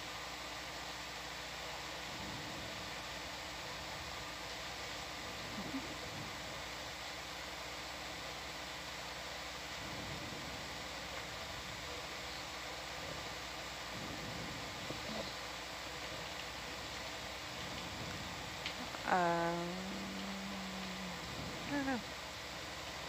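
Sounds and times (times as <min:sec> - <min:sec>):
faint low hum: 0:00.0 - 0:23.0
steady hiss: 0:00.0 - 0:23.0.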